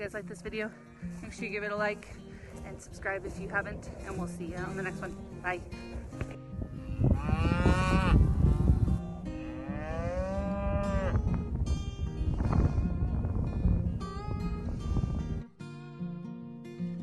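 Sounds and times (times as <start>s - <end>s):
cows mooing: 6.8s - 11.3s.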